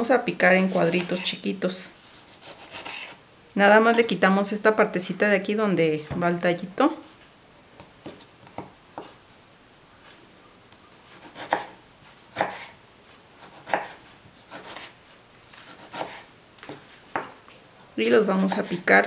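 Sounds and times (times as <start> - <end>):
knife slicing tomatoes: 0.6 - 1.4, 2.0 - 3.2, 11.1 - 12.8, 13.4 - 17.4.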